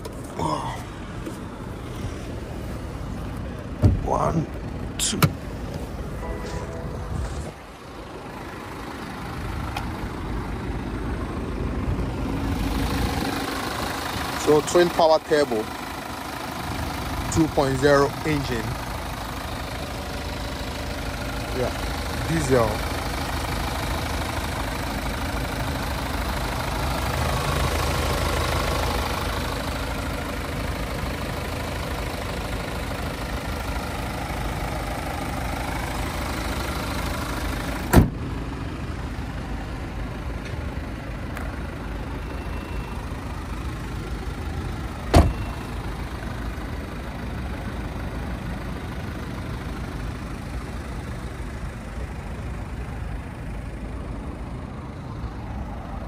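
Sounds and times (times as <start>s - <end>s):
diesel engine idling: 0.0s - 56.0s
car bonnet thump: 3.8s - 4.0s, 37.9s - 38.2s, 45.1s - 45.4s.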